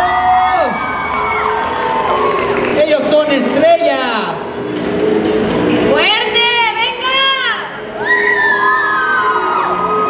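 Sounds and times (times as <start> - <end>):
audience cheering: 0.1 - 3.1.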